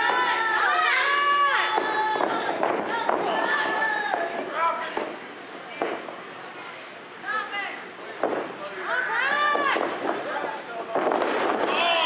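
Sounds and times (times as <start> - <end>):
spectators shouting: 0.0 - 4.4.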